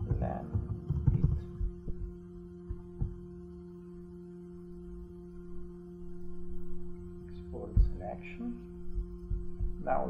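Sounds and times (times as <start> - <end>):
keyboard knocks: 0.0 - 3.2
steady electrical hum: 0.0 - 10.0.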